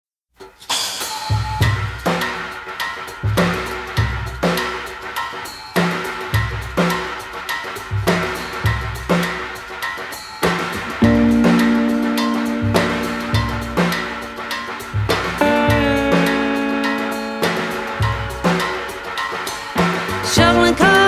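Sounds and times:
drum kit beat: 0.4s - 21.0s
pitched instrument notes: 11.0s - 21.0s
loud sustained chord: 11.2s - 19.6s.

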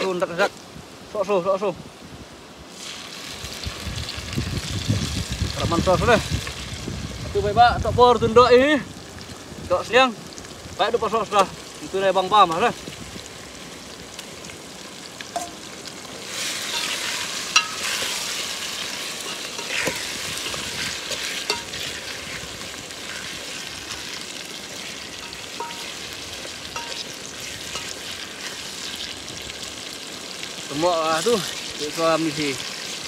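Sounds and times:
meat sizzling in hot oil: 0.0s - 1.7s, 2.7s - 33.0s
metal spoon scraping a pot: 19.2s - 22.4s.

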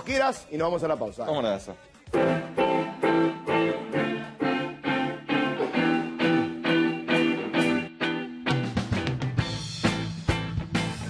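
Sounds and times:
electric guitar strumming chords: 2.1s - 11.0s.

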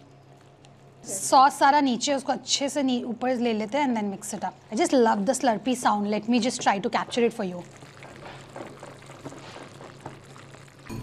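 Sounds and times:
wet squelching of noodles: 7.5s - 10.9s.

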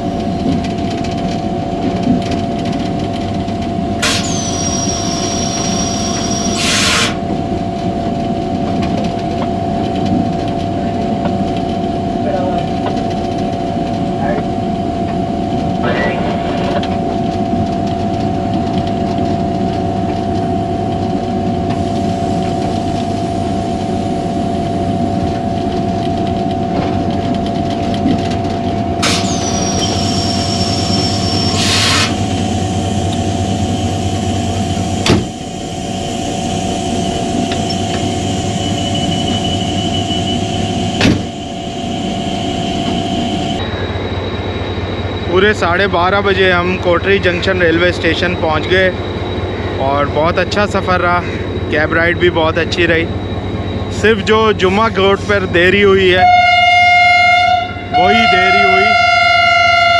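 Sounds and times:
diesel locomotive engine drone: 0.0s - 59.9s.

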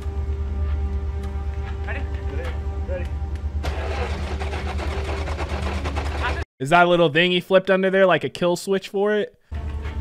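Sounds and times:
engine cranking with starter: 3.6s - 6.4s.

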